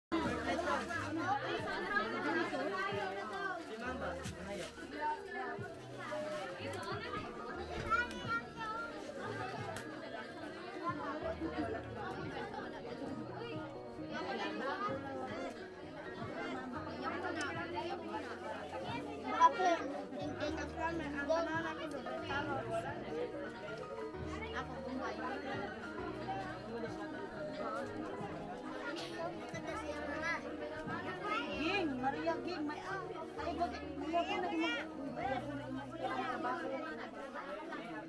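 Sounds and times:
children and adults chattering: 0.1 - 38.0.

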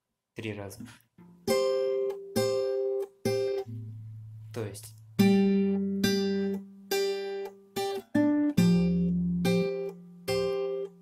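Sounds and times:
acoustic guitar strings plucked: 0.8 - 11.0.

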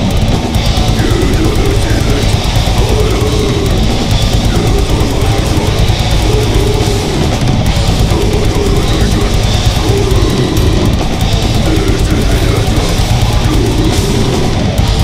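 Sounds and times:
distorted guitars and bass: 0.0 - 15.0
fast dense drumming: 0.0 - 15.0.

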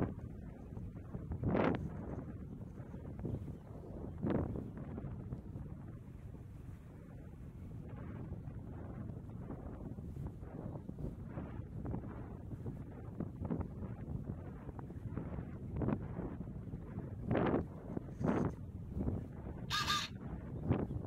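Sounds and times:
wind buffeting microphone: 0.0 - 21.0
short harsh pitched call: 19.7 - 20.2.

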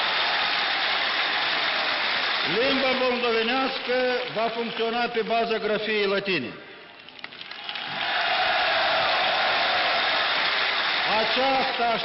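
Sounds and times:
crowd cheering and applauding: 0.0 - 5.1, 7.2 - 12.0.

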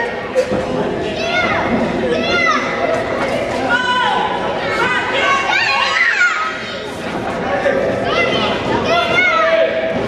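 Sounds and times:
crowd chatter: 0.0 - 10.0
children shouting: 3.6 - 6.9, 8.0 - 9.9.

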